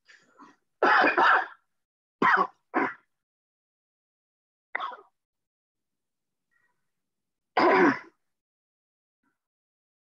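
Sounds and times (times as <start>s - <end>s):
person clearing throat: 7.6s - 8.2s.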